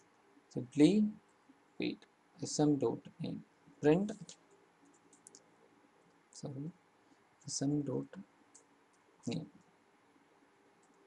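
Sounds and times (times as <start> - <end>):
computer keyboard clicks: 4.8 - 5.4.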